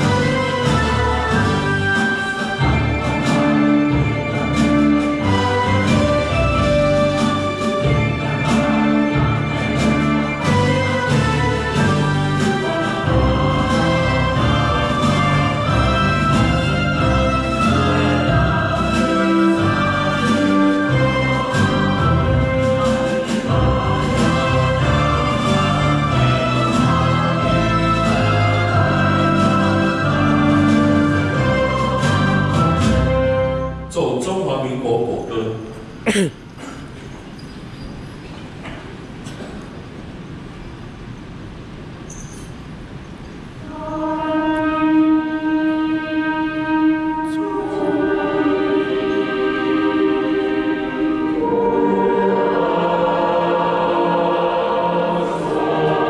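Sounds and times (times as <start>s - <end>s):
choir singing: 0.0s - 33.9s, 43.6s - 56.0s
orchestral music: 0.0s - 35.8s, 43.6s - 56.0s.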